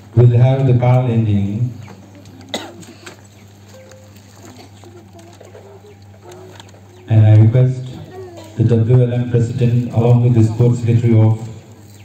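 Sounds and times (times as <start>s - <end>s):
person coughing: 2.5s - 3.2s.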